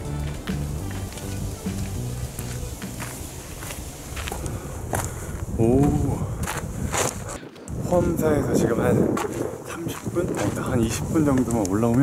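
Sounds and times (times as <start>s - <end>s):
footsteps on rock: 0.2s - 8.2s, 9.0s - 12.0s
wind on microphone: 1.1s - 12.0s.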